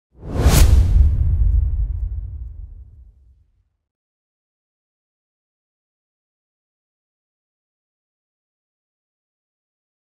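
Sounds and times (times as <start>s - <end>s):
deep low rumble: 0.2s - 3.3s
sharp whoosh: 0.2s - 3.3s.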